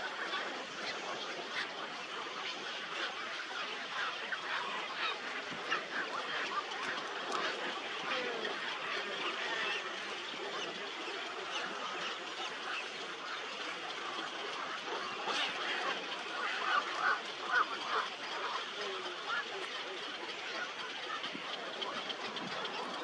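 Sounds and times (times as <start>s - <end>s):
chorus of waterbirds calling: 0.0s - 23.0s.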